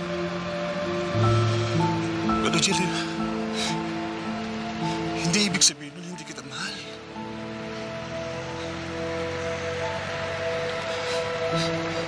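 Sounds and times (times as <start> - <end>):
faint hiss: 0.0 - 9.4
dramatic sustained chords: 0.0 - 12.0.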